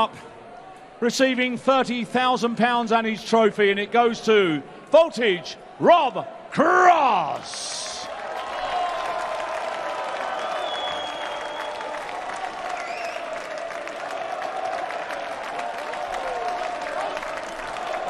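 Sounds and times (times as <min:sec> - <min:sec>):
applause: 0:07.4 - 0:18.0.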